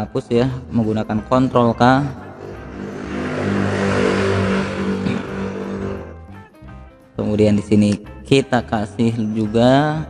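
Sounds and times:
background music: 0.0 - 10.0
rushing noise: 2.0 - 6.5.

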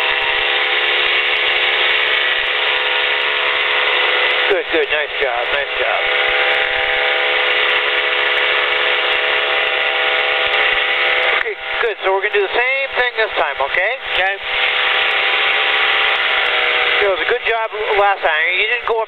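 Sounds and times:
aircraft engine droning: 0.0 - 19.0
person speaking: 4.5 - 6.1, 11.4 - 14.5, 17.0 - 19.0.

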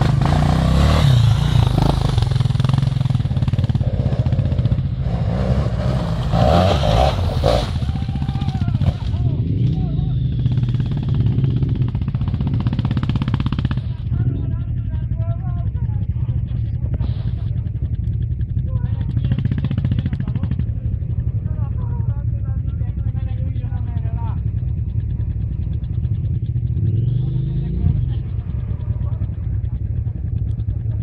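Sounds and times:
motorcycle engines revving: 0.0 - 31.0.

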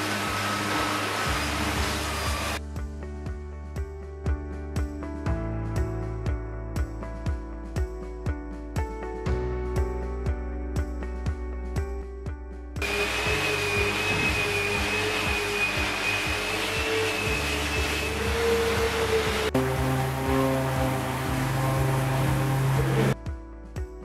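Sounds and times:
angle grinder sanding wood: 0.0 - 2.6, 12.8 - 23.2
orbital sanders humming: 0.0 - 2.6, 12.8 - 23.2
background music: 0.0 - 24.0.

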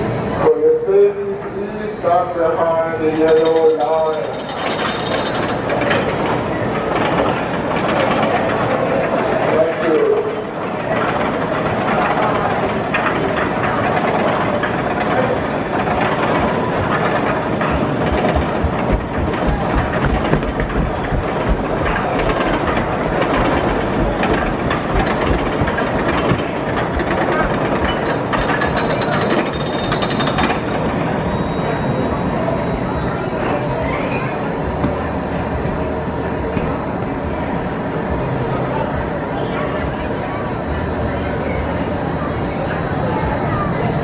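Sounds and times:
coaster train rumble and clatter: 0.0 - 44.0.

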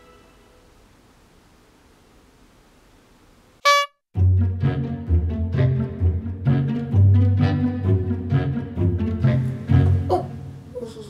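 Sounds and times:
loud horn-like honk: 3.6 - 4.0.

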